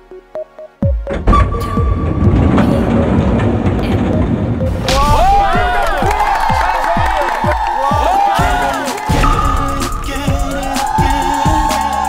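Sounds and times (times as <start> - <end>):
sliding van door rolling open: 1.1 - 7.0.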